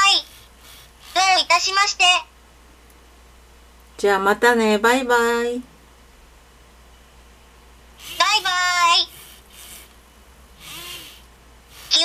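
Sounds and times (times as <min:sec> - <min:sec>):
small servo motors whirring: 0:00.0 - 0:01.8, 0:08.0 - 0:10.0, 0:10.6 - 0:12.0.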